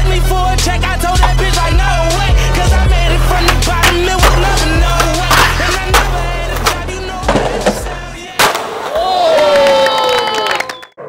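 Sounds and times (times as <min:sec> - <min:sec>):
hip hop music with heavy bass: 0:00.0 - 0:08.4
skateboard wheels rolling on concrete: 0:01.0 - 0:10.4
skateboard clacking: 0:01.1 - 0:01.8, 0:03.1 - 0:09.0.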